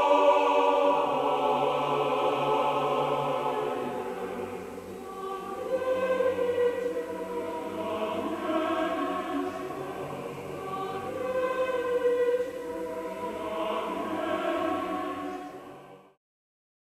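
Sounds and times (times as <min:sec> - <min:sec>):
choir singing held notes: 0:00.0 - 0:16.2.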